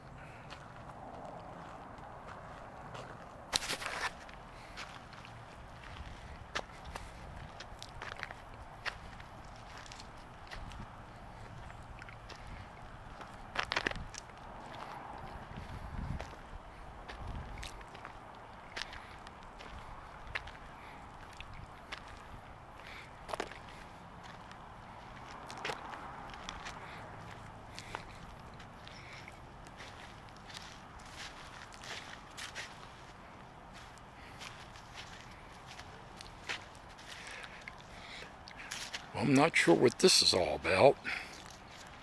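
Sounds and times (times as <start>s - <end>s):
steady outdoor background: 0.0s - 42.0s
footsteps on dry grass: 0.1s - 42.0s.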